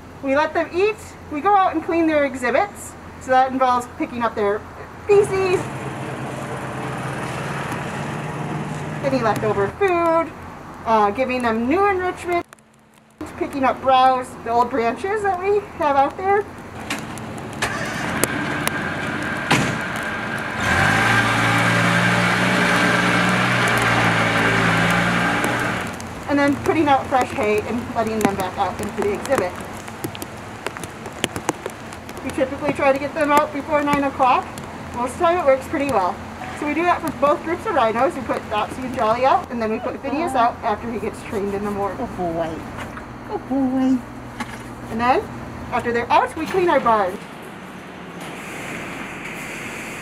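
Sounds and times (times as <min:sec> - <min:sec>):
steady rain: 0:04.9 - 0:41.2
small engine running: 0:20.5 - 0:26.0
drops tapping hard surfaces: 0:24.8 - 0:39.6.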